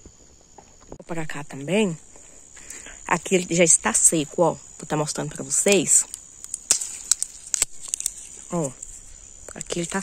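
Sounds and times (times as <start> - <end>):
high insect buzz: 0.0 - 10.0
dry pea pods snapping open: 5.5 - 10.0.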